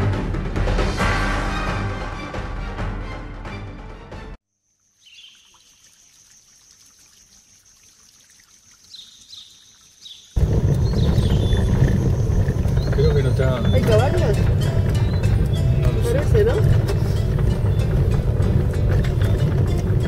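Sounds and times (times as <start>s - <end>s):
engine and road rumble: 10.4s - 20.0s.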